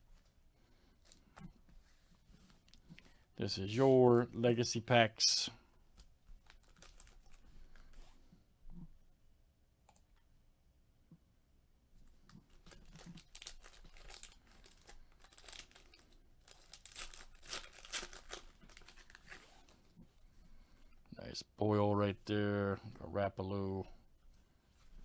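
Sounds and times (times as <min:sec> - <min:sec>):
foil wrapper tearing and crinkling: 0:06.4 - 0:07.4, 0:12.5 - 0:19.7.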